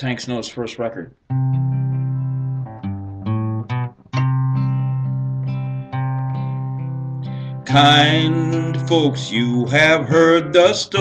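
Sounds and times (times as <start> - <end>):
guitar strumming chords: 1.3 - 11.0.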